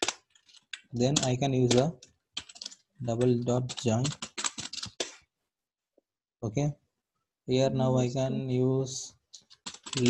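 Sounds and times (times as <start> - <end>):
computer keyboard typing: 0.0 - 5.2, 9.4 - 10.0.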